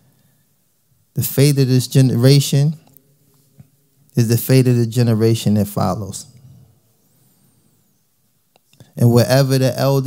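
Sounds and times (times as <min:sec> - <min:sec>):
faint room hiss: 0:00.0 - 0:10.0
man speaking: 0:01.1 - 0:03.0, 0:04.1 - 0:06.7, 0:08.8 - 0:10.0.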